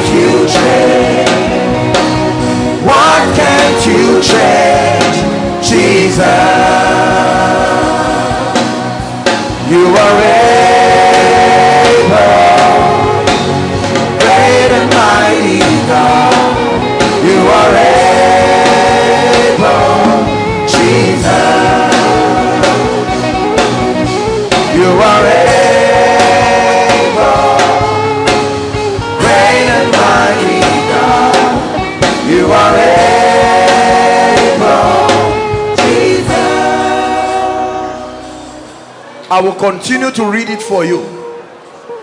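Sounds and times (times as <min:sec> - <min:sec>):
voices singing: 0:00.0 - 0:38.9
band with steady beat: 0:00.0 - 0:42.0.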